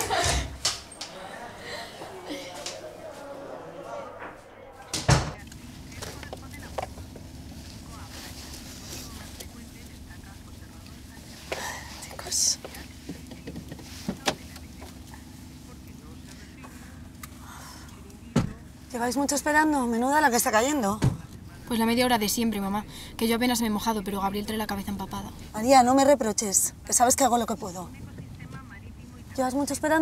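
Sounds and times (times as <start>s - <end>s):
door banging shut: 4.9s - 5.4s
car interior hum: 5.1s - 30.0s.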